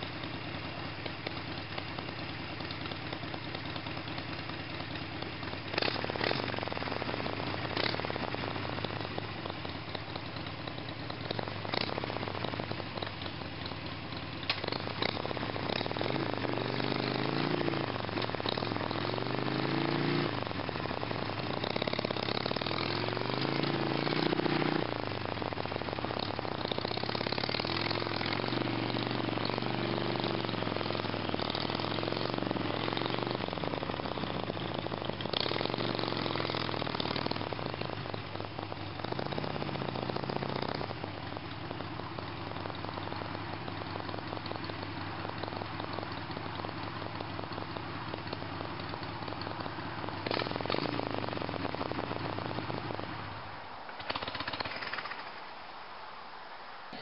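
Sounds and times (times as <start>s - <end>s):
motorcycle engine revving: 0.0s - 55.4s.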